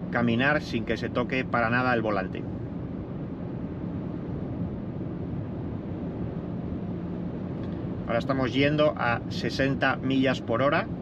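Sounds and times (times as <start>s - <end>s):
road and wind noise in car cabin: 0.0s - 11.0s.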